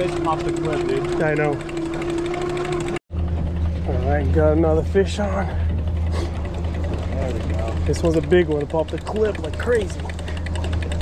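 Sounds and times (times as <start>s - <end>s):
outboard motor droning: 0.0s - 11.0s.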